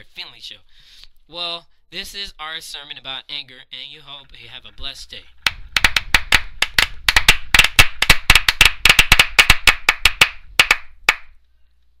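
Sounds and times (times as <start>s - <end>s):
small group applauding: 5.8s - 11.3s.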